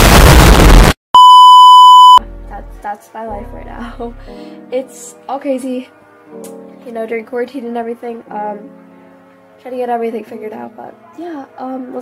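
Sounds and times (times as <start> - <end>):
loud explosion: 0.0 - 1.0
high test-tone beep: 1.2 - 2.2.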